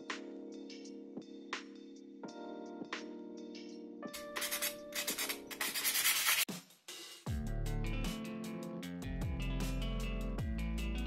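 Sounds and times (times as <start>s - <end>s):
background music: 0.0s - 6.4s, 7.3s - 11.0s
sandpaper rasping on clay: 4.2s - 6.5s.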